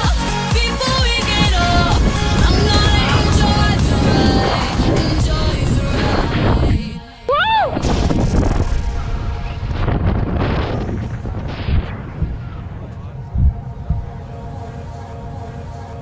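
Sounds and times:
wind buffeting microphone: 1.0s - 7.0s, 7.7s - 16.0s
person whooping: 7.3s - 7.8s.

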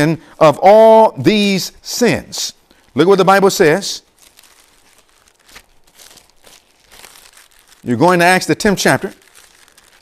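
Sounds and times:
paper pages rustling: 4.1s - 10.0s.

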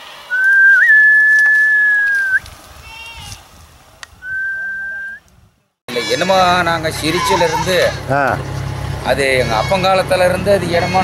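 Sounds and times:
person whistling: 0.3s - 2.4s, 4.2s - 5.2s.

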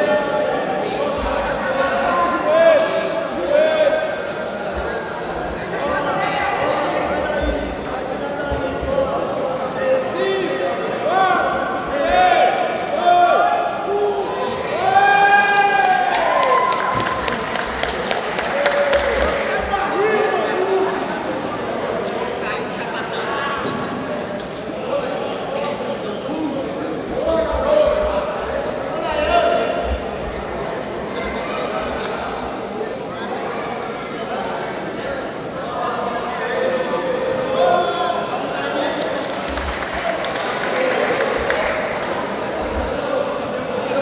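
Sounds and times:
crowd noise: 0.0s - 44.0s
spectators clapping: 15.5s - 19.6s, 38.9s - 42.1s.

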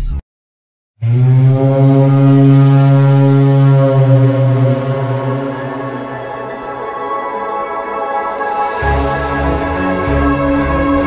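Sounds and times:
ambient music: 1.0s - 11.0s
low horn-like drone: 1.0s - 11.0s.

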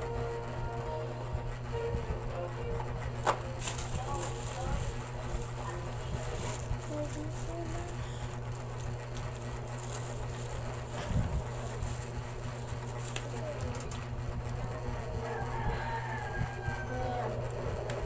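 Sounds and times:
steady low hum: 0.0s - 18.0s
packages being handled: 3.2s - 14.0s
plastic bags crinkling: 3.6s - 14.0s.

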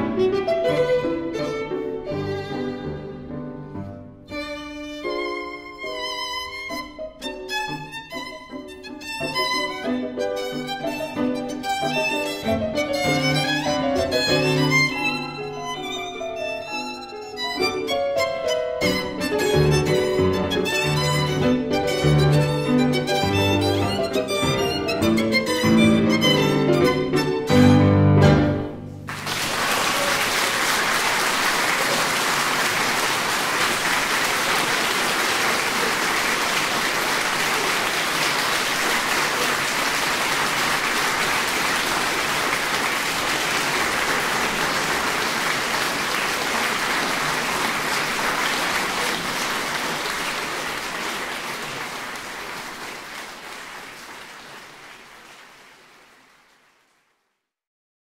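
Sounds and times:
audience applauding: 29.0s - 57.2s.

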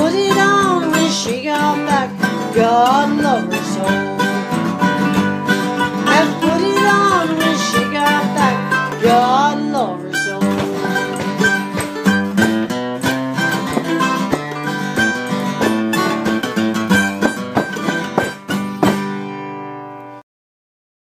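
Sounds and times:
guitar strum ringing: 0.0s - 20.1s
acoustic guitar picking: 0.0s - 20.2s.

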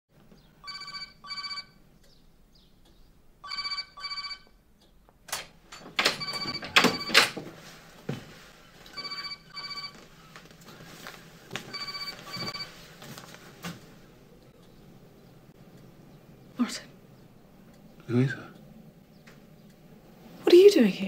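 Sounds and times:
telephone double ringing: 0.6s - 1.8s, 3.4s - 4.5s, 6.0s - 7.4s, 9.0s - 10.0s.

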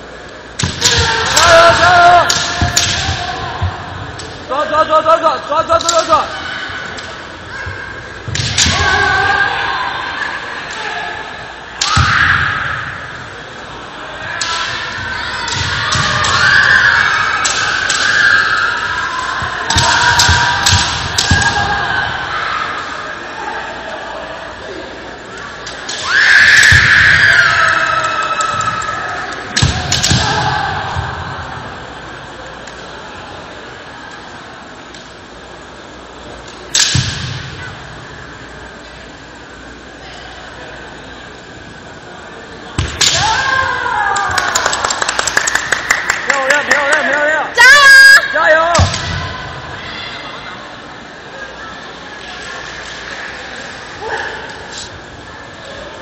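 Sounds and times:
loud shouting in echoing hall: 0.6s - 34.5s, 41.4s - 56.0s.

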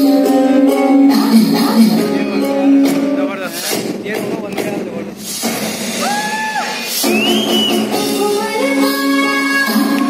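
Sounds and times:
person singing: 0.0s - 3.1s
dance music over speakers: 0.0s - 10.0s.

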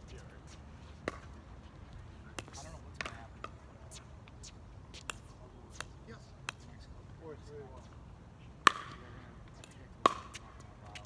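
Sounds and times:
pickleball pops on hard court: 8.7s - 9.0s, 10.0s - 10.4s.

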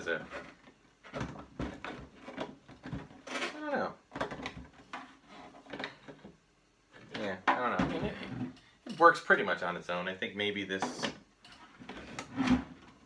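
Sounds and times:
plastic helmet knocks and rattles: 0.1s - 3.4s, 4.1s - 6.4s, 7.0s - 8.6s.

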